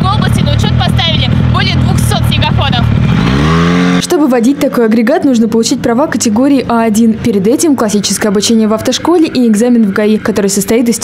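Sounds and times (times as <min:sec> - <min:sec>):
snowmobile engine idling: 0:00.0 - 0:03.4
snowmobile engine revving: 0:00.0 - 0:06.0.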